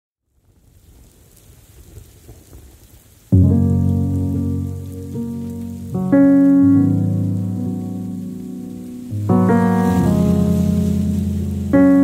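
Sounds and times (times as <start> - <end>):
soft rain-like hiss: 0.2 - 12.0
low piano chord ringing: 3.4 - 12.0.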